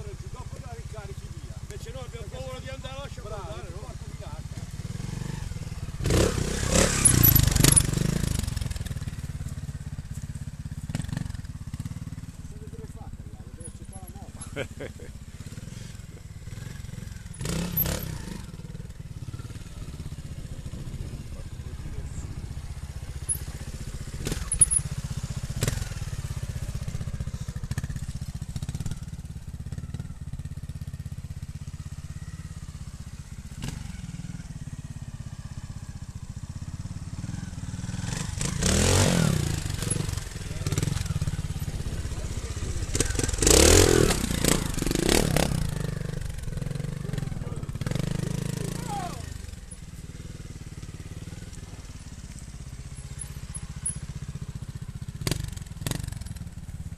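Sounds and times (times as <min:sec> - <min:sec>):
motorcycle engine idling and revving: 0:00.0 - 0:56.9.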